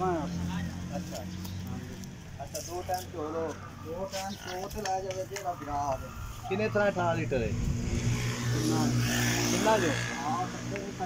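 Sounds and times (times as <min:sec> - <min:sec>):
man speaking: 0:00.0 - 0:07.6.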